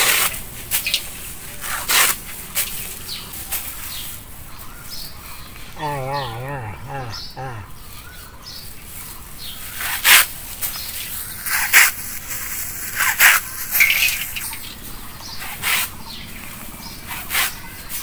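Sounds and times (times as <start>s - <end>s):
sickle crunching through dry straw: 0.0s - 5.6s, 7.8s - 14.7s.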